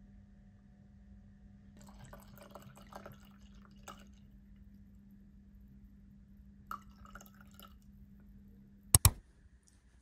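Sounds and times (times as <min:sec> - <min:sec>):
wine pouring into glass: 0:01.8 - 0:04.2, 0:06.7 - 0:07.9
sharp clicks: 0:09.0 - 0:09.2.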